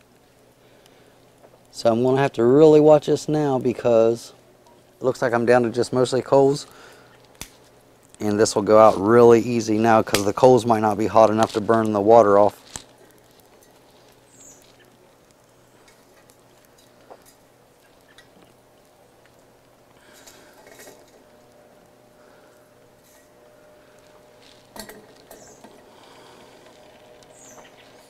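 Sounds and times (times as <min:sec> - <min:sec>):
fire crackling in stove: 0:00.0 - 0:28.0.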